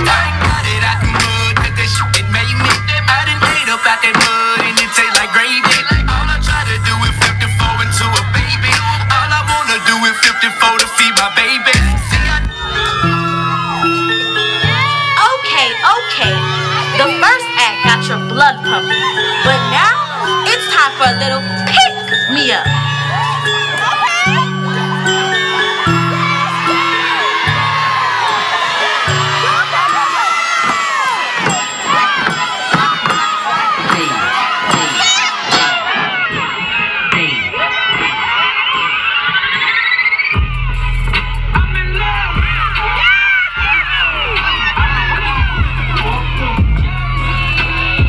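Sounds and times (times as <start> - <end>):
crowd cheering and screaming: 0.0 - 48.0
dance music: 0.0 - 48.0.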